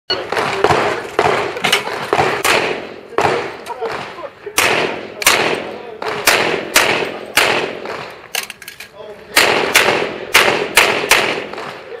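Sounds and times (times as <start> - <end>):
pistol shots with echo: 0.1 - 8.3, 9.3 - 12.0.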